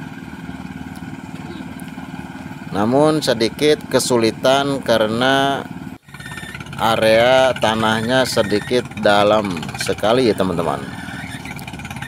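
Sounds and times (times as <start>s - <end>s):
small petrol engine running: 0.0s - 12.0s.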